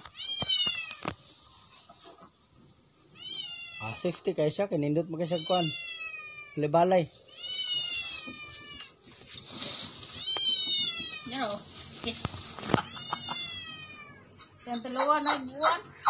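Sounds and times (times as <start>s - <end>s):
young animal crying: 3.1s - 4.0s, 5.2s - 9.0s, 12.7s - 16.0s.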